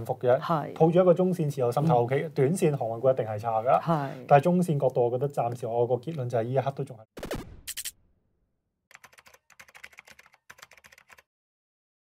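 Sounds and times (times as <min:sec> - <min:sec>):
keyboard key clicks: 0:08.9 - 0:11.2.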